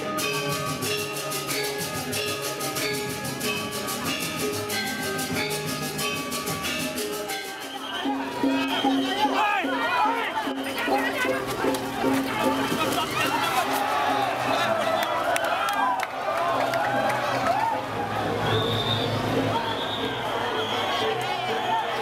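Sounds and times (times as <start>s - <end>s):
crowd calling out and chattering: 0.0s - 22.0s.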